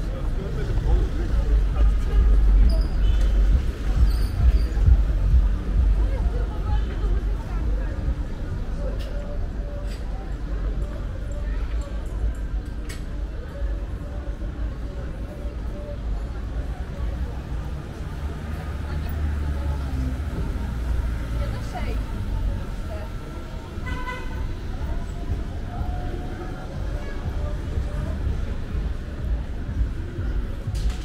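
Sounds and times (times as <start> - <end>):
low traffic rumble: 0.0 - 31.0
people talking: 0.0 - 31.0.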